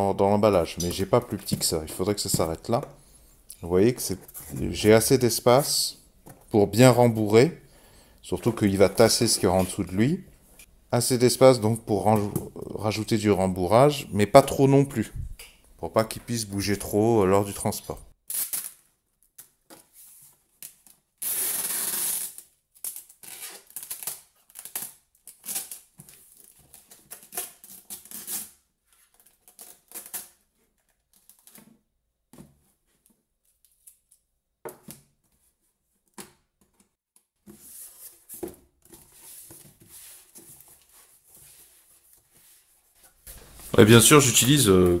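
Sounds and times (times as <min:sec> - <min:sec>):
packing tape pulled off roll: 0:18.3 - 0:19.5, 0:20.6 - 0:28.6, 0:29.2 - 0:30.4.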